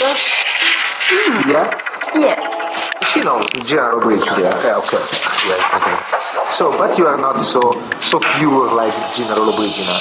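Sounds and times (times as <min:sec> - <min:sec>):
trance music: 0:00.2 - 0:07.2, 0:08.2 - 0:10.0
pitch-bent voice sample: 0:01.0 - 0:07.0, 0:08.2 - 0:10.0.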